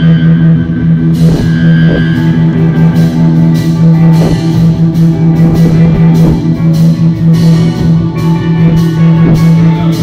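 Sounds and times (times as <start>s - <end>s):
electric guitar chord: 0.0s - 10.0s
drum kit hits: 0.9s - 10.0s.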